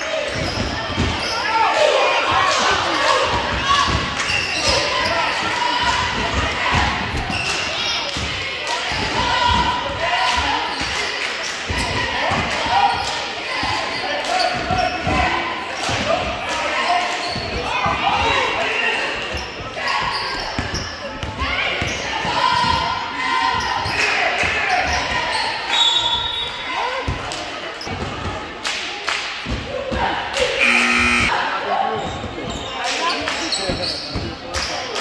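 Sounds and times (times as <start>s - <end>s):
voices calling out: 30.4s - 32.2s.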